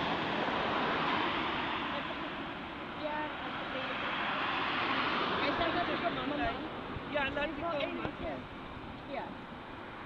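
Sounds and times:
road traffic: 0.0s - 10.0s
people talking: 3.0s - 4.1s, 5.4s - 8.4s, 9.1s - 9.4s.

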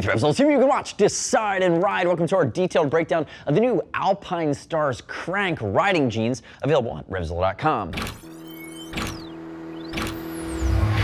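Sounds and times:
sweeping tones: 8.2s - 11.0s.

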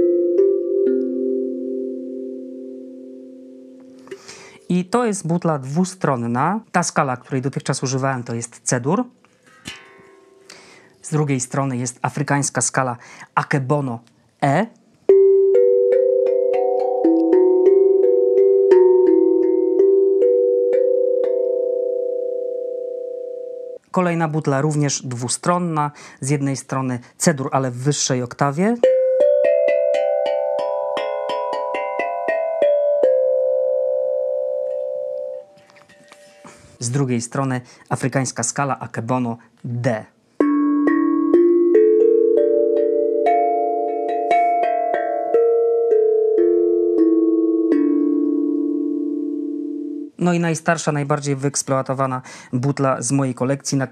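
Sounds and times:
steel tongue drum notes: 15.1s - 23.8s, 28.8s - 36.2s, 40.4s - 50.2s.

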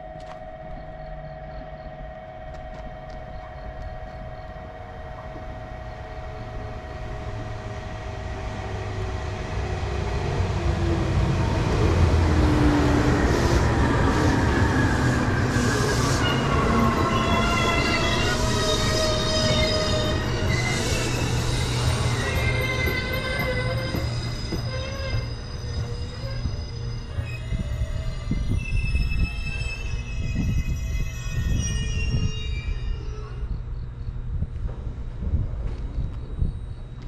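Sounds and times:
electric train rumble: 0.0s - 37.0s.

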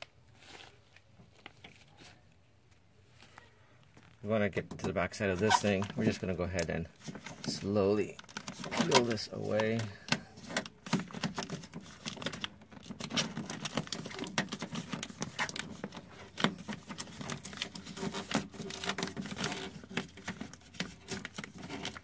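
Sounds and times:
plastic sheet crackling and rustling: 5.2s - 22.0s.

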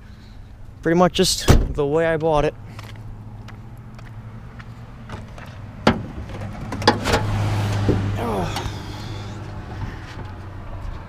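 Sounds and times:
car hood unlatching clunk: 5.8s - 8.7s.

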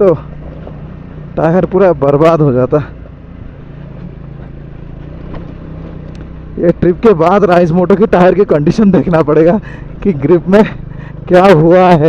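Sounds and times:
motorcycle engine running: 0.0s - 12.0s
road noise on gravel: 0.0s - 12.0s.

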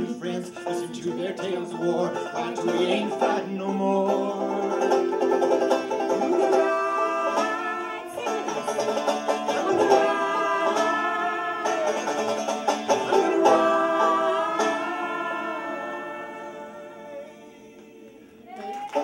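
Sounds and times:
banjo picking: 0.0s - 17.5s
fiddle: 0.0s - 17.9s
people singing: 0.0s - 19.0s.

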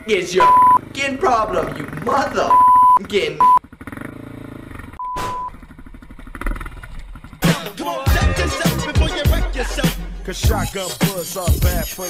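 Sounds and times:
censor bleep: 0.4s - 0.8s, 2.5s - 3.6s, 5.0s - 5.6s
dirt bike engine running: 0.5s - 8.4s.

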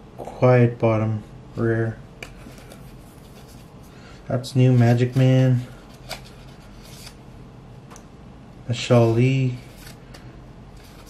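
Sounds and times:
cards rubbing together: 2.4s - 3.9s, 4.7s - 7.2s, 9.5s - 10.0s, 10.8s - 11.0s.

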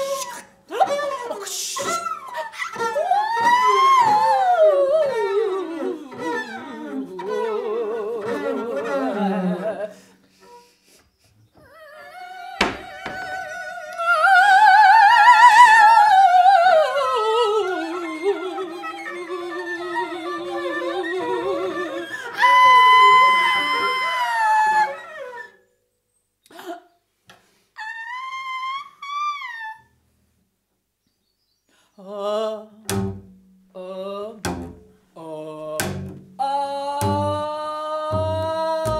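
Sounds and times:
woman singing wordlessly: 0.0s - 10.0s, 11.6s - 25.4s, 32.0s - 38.9s
sharp knock: 12.6s - 13.2s
bowed double bass: 32.8s - 38.9s.

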